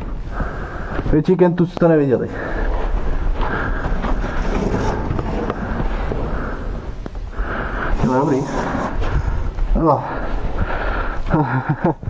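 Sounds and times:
wind rumble on microphone: 2.8 - 11.2
leather jacket scraping on concrete: 4.0 - 6.3.

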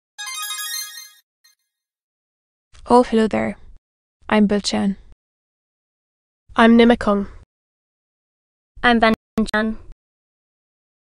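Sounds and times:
bright electronic chime jingle: 0.2 - 1.2.

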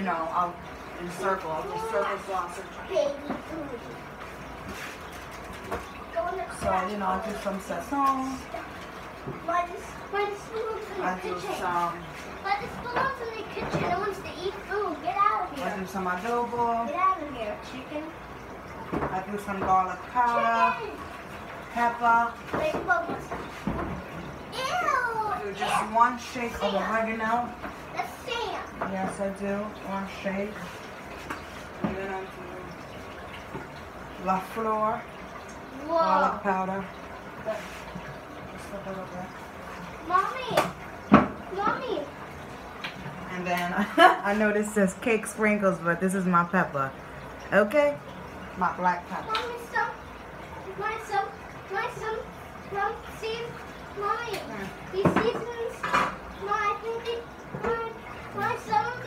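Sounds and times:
containers knocking and rattling: 10.2 - 14.5, 21.8 - 24.4, 54.3 - 58.5.

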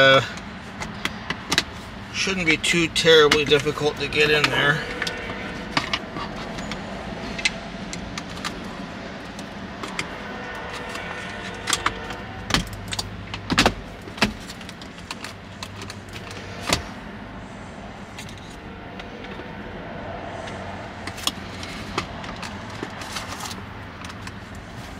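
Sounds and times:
steady low hum: 0.2 - 22.9.

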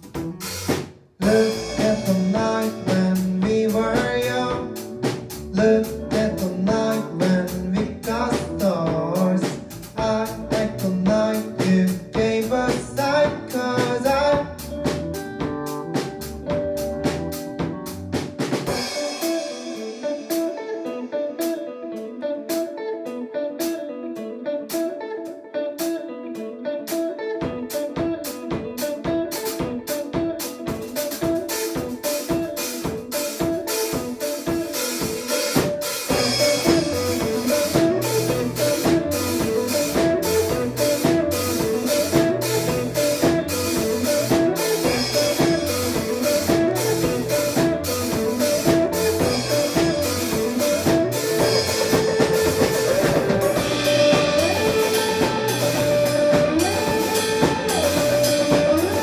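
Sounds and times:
steady drums: 0.0 - 21.7, 26.9 - 59.0
electric guitar riff: 0.0 - 59.0
live rock band: 0.0 - 59.0.

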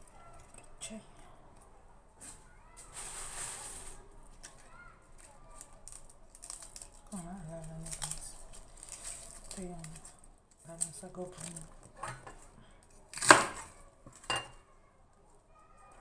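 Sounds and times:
garlic skin rustling: 2.2 - 14.3.

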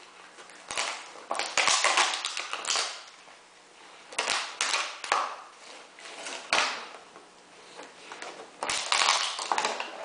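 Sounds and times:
plastic bottle crackling: 0.6 - 3.1, 8.2 - 10.0.

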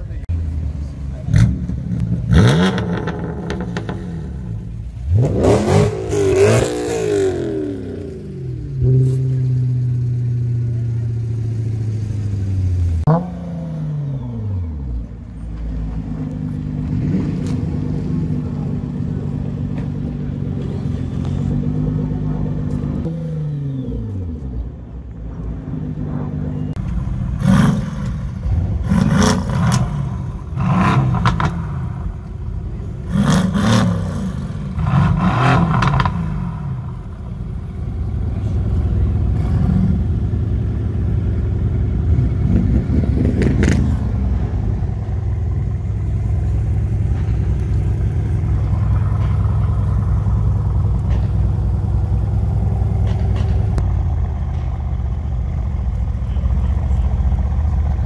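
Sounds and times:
car engine idling: 0.0 - 13.2, 14.1 - 23.1, 23.8 - 58.0
sports car engines revving: 0.0 - 58.0.

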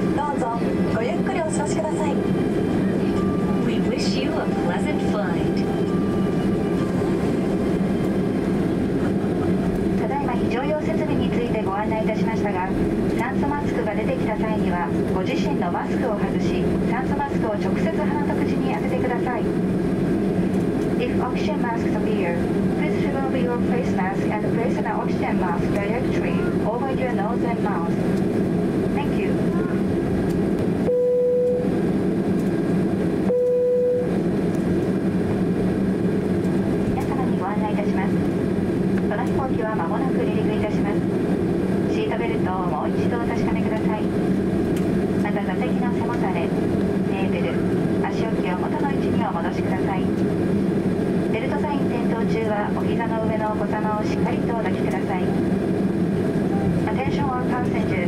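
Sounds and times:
announcement over public address: 0.0 - 19.6, 20.9 - 28.0, 37.0 - 38.2, 39.0 - 41.1, 41.7 - 44.1, 45.2 - 50.1, 51.3 - 55.4
engine and cabin hum: 0.0 - 58.0.

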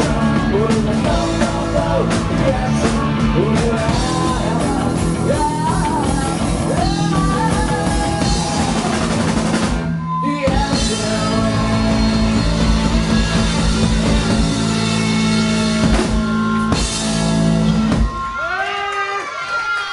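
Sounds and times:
bass guitar: 0.0 - 18.7
drum kit: 0.0 - 18.7
electric guitars: 0.0 - 19.9.

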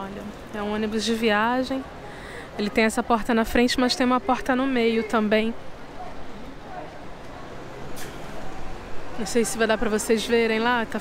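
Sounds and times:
bus station traffic: 0.0 - 11.0.

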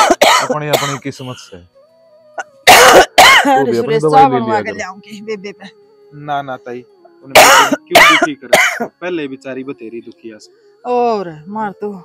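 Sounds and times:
woman coughing hard: 0.0 - 1.3, 2.7 - 3.8, 7.3 - 9.0.

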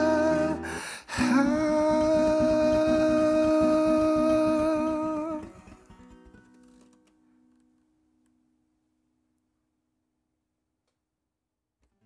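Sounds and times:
acoustic guitar strumming: 0.0 - 8.2.

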